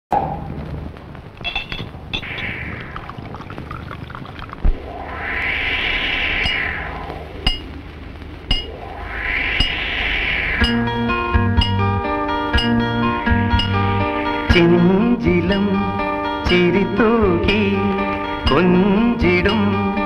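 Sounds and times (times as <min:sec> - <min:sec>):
water washing in swells: 0:00.1 - 0:14.6
sharp ringing clicks: 0:01.4 - 0:02.4.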